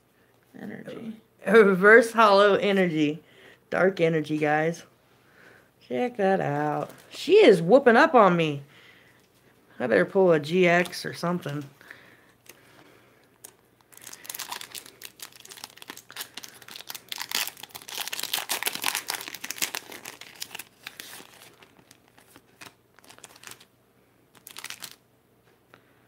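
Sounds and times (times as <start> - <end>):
foil wrapper crinkling and tearing: 13.4 - 23.7, 24.3 - 25.0.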